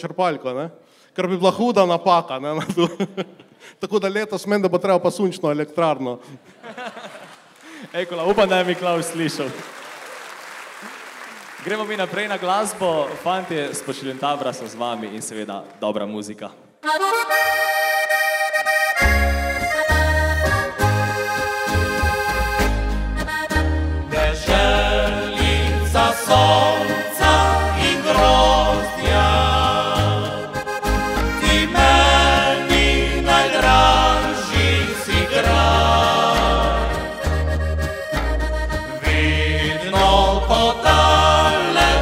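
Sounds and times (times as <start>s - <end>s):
accordion playing folk tune: 16.8s - 42.0s
double bass: 18.7s - 42.0s
rhythm guitar: 19.0s - 42.0s
men singing in harmony: 24.1s - 37.2s, 38.9s - 42.0s.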